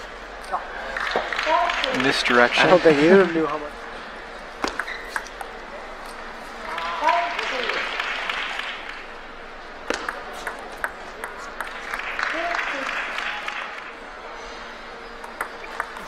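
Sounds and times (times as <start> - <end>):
audience applause: 0.7 - 3.7, 6.6 - 9.1, 11.4 - 14.0
table tennis ball clicking: 4.6 - 6.2, 9.9 - 12.5, 15.2 - 16.0.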